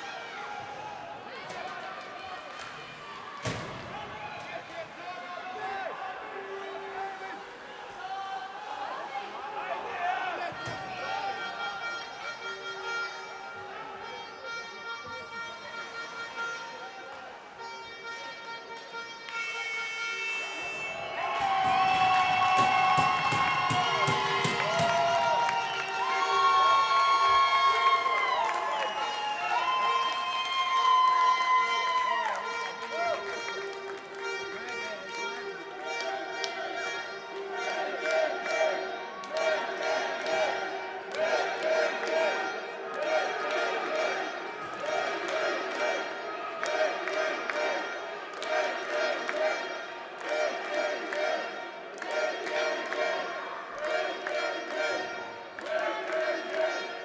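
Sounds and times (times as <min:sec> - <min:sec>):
spectators cheering and clapping: 0:00.0 - 0:12.1, 0:20.2 - 0:57.0.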